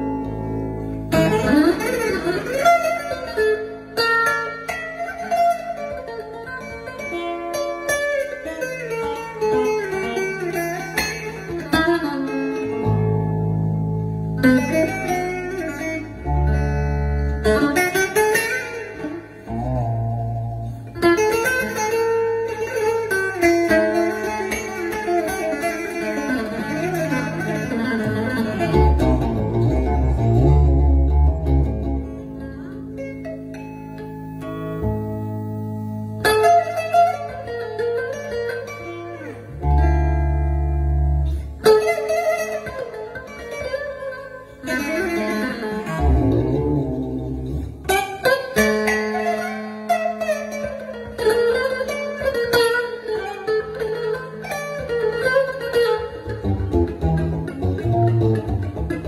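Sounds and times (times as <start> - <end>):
plucked lute notes: 0.0 - 59.0.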